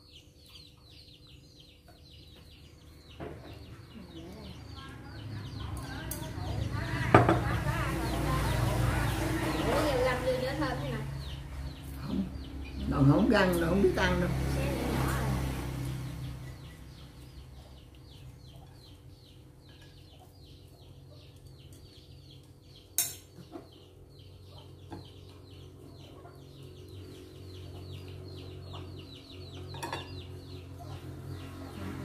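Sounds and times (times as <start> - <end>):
bird chirping: 0.0 - 32.0.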